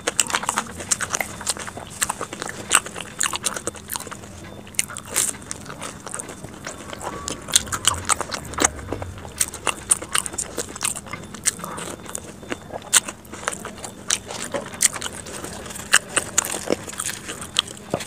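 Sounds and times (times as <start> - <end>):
chewing crispy food: 0.0 - 18.0.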